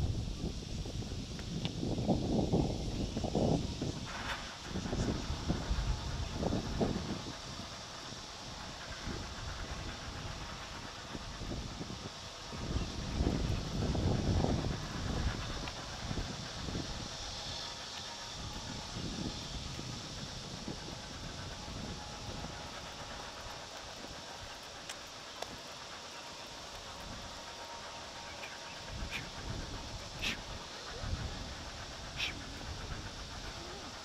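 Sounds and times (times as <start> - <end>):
steady background hiss: 0.0 - 34.0
wind buffeting microphone: 0.0 - 34.0.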